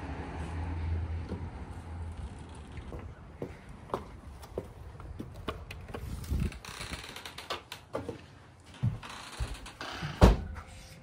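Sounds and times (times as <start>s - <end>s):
footsteps: 1.2s - 11.0s
door thump: 10.1s - 10.5s.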